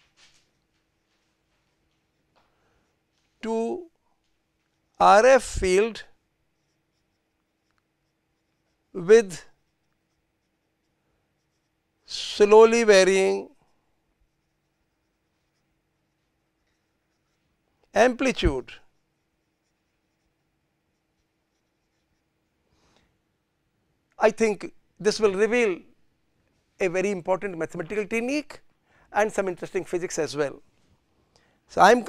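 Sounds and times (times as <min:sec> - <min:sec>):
marker pen scratching on paper: 0:00.0 - 0:03.4, 0:04.3 - 0:22.8
faint steady hum: 0:00.0 - 0:32.0.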